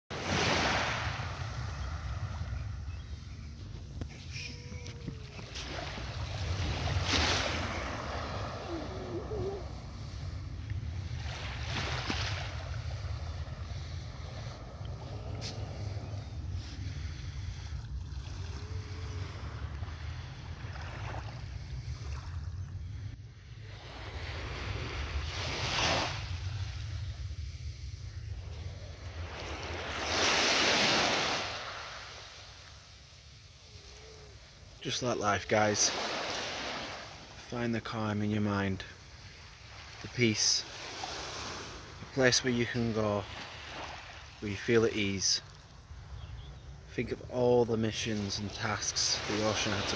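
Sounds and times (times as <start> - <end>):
small waves lapping on shore: 0.1 - 49.9.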